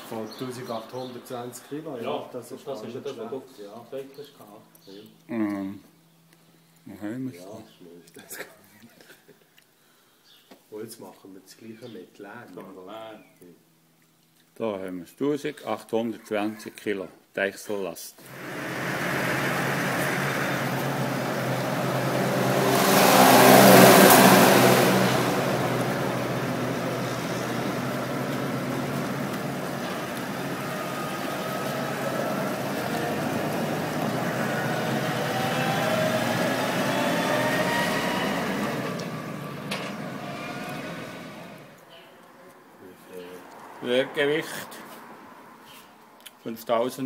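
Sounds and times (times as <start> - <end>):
rushing noise: 18.3 - 41.8
tractor engine under load: 18.3 - 41.8.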